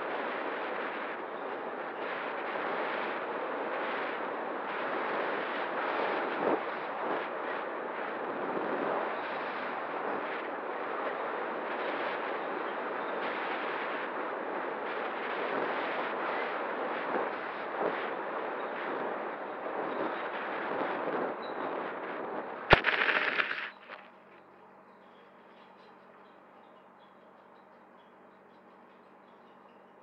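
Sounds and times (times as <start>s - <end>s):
rushing wind: 0.0s - 24.1s
drone hitting ground: 22.7s - 24.0s
drone motor noise: 22.7s - 24.0s.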